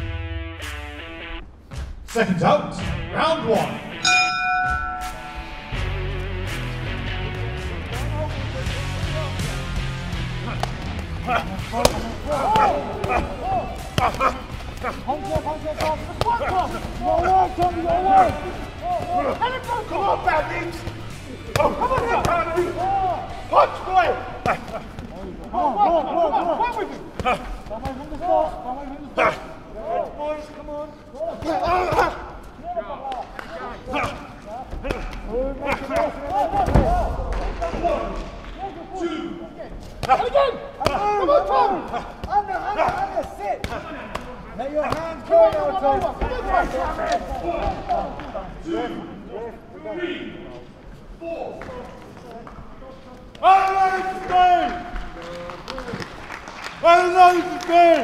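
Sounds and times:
bass-heavy music: 0.0 - 15.2
people shouting: 10.1 - 30.1, 31.2 - 39.2, 40.0 - 49.1, 53.4 - 54.8
boxing punches thudding: 10.4 - 22.9, 39.8 - 48.0.

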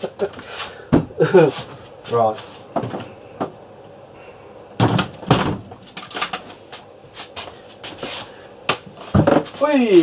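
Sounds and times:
man laughing breathily: 0.0 - 1.6.

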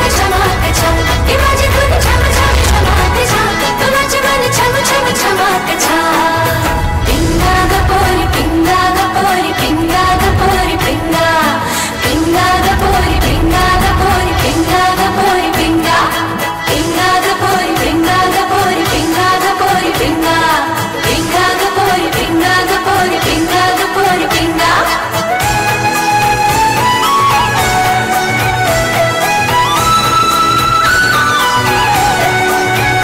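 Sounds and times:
fast dense percussion beat: 0.0 - 24.5
women singing film song: 0.0 - 25.5.

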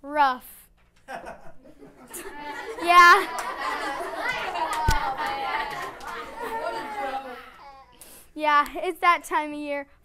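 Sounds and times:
children laughing and chattering: 1.1 - 8.0.

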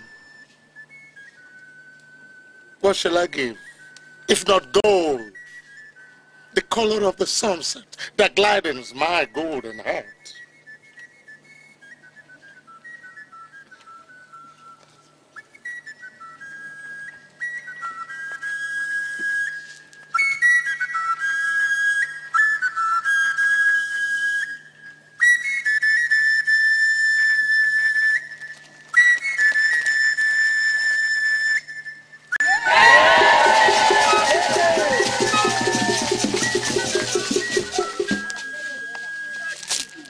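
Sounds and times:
high whistle-toned melody: 0.0 - 6.8, 9.2 - 40.0
drums and fuller music: 32.8 - 38.4.

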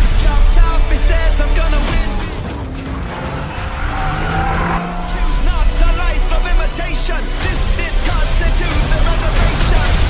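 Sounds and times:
car engine: 0.0 - 9.4
trailer music: 0.0 - 10.0
car tyres skidding: 2.0 - 7.4.

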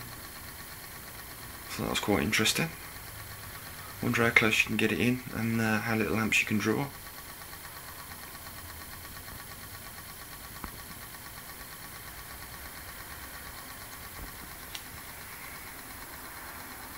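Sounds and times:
pulse motor coil pulsing: 0.0 - 16.9.

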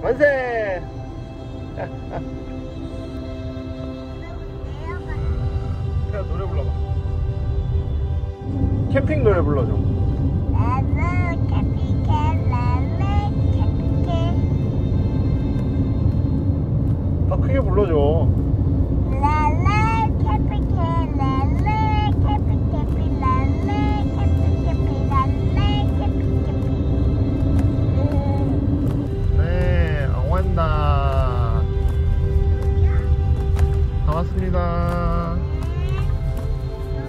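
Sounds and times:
road noise rumble: 0.0 - 37.0
young child singing: 4.2 - 5.5, 10.6 - 14.5, 19.1 - 27.1, 27.8 - 28.6, 32.8 - 33.2, 35.6 - 36.3.

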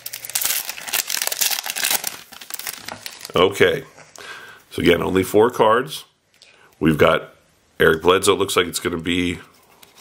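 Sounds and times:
wrapper tearing and crinkling: 0.0 - 3.5.

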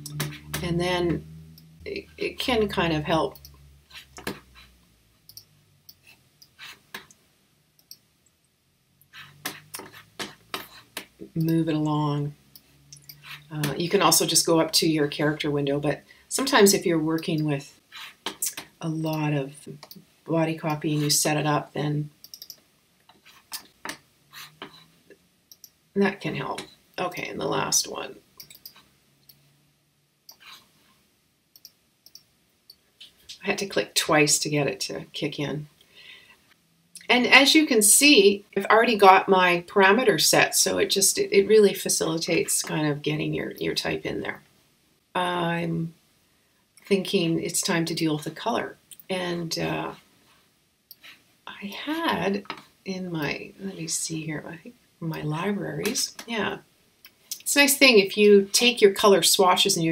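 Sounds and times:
computer mouse clicks: 22.2 - 22.6, 25.5 - 25.8, 28.4 - 29.4, 31.5 - 32.3
mouse buttons clicking: 22.2 - 22.6.

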